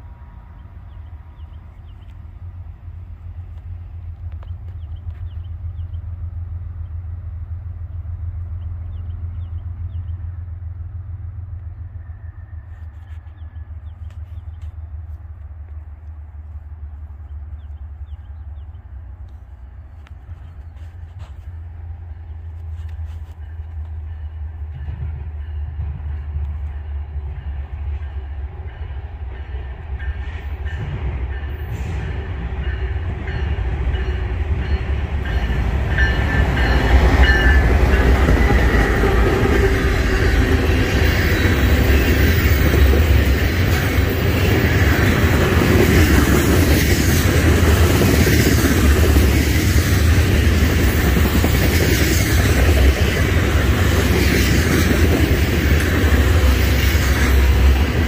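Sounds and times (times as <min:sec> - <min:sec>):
freight train diesel locomotives: 0:00.0 - 0:58.0.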